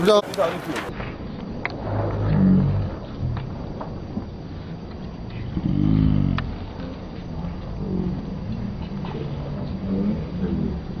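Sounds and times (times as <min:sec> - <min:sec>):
low rumble of traffic: 0:00.0 - 0:11.0
indistinct voices: 0:01.6 - 0:04.2, 0:05.0 - 0:11.0.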